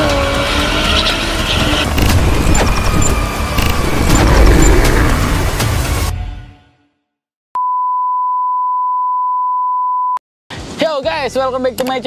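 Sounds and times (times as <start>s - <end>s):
steady high beep tone: 2.0s - 4.8s
dense intro sound effect with clicks: 2.0s - 6.1s.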